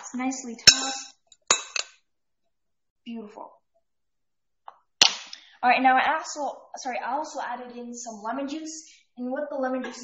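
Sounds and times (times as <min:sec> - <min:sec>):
metal spoon clinking glass bowl: 0:00.6 - 0:02.0.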